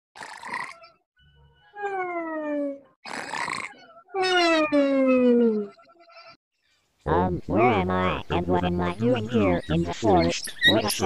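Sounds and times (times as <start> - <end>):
cartoon snore: 0.2 - 0.9, 3.0 - 3.8.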